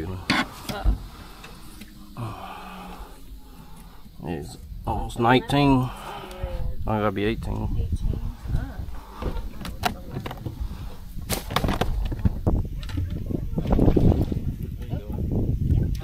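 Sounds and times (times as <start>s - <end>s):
wind rumble on microphone: 0.0s - 16.0s.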